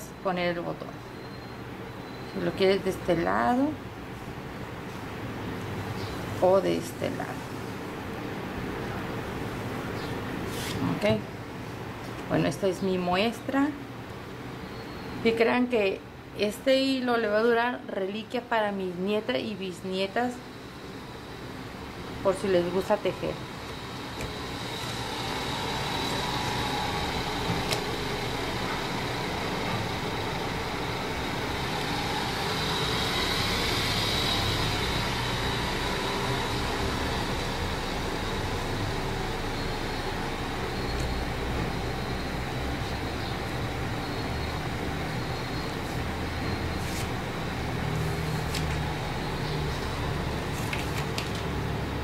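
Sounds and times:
road traffic rumble: 20.6s - 52.0s.

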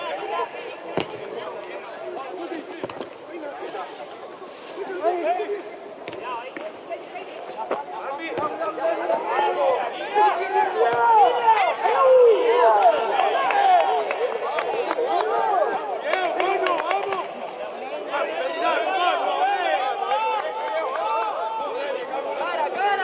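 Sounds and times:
crowd talking and shouting: 0.0s - 23.0s.

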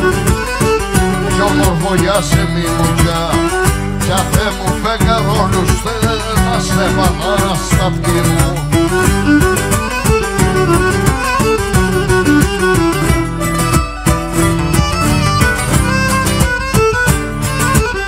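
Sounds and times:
steady percussion beat: 0.0s - 18.0s
strummed lute and mandolin: 0.0s - 18.0s
bowed lyra melody: 6.7s - 18.0s.

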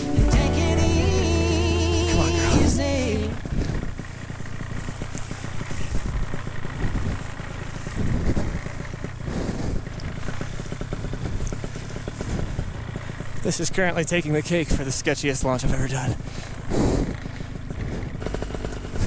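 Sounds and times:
paramotor engine running: 0.0s - 19.0s
wind buffeting microphone: 3.4s - 10.4s.

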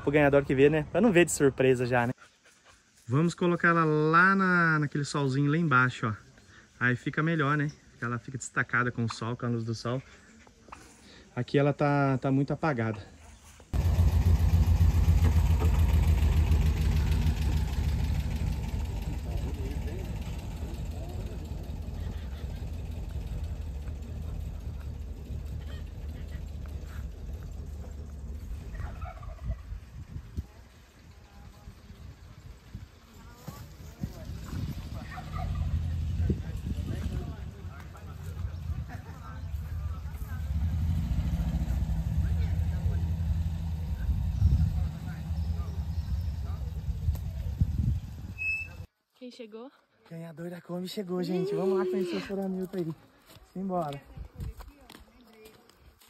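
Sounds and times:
van engine driving off: 13.7s - 48.9s.

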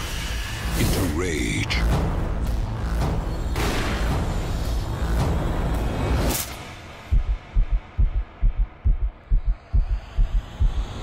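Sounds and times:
low heartbeat thumps: 7.1s - 11.0s.

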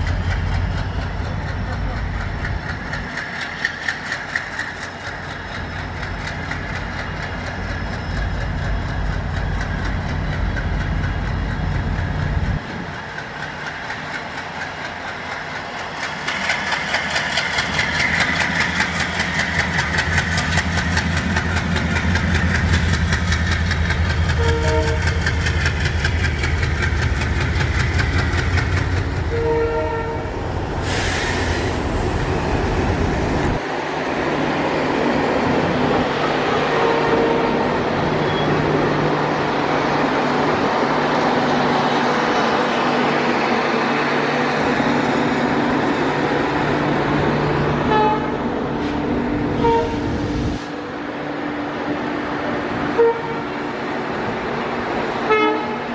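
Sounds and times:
diesel locomotive engine chugging: 0.0s - 55.9s
train horn blasts: 24.3s - 25.2s, 29.3s - 30.3s, 36.6s - 38.4s, 47.8s - 48.4s, 49.6s - 50.1s, 52.9s - 53.5s, 55.2s - 55.9s
brief hiss: 30.8s - 32.0s.

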